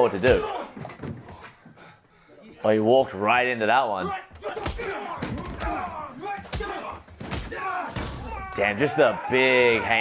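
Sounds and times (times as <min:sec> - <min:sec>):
men's voices: 0:00.0 - 0:10.0.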